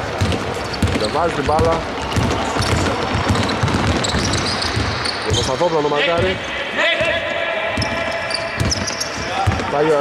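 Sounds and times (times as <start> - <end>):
players' footsteps: 0.0 - 10.0
basketball bouncing on hardwood: 0.2 - 5.1, 8.6 - 9.8.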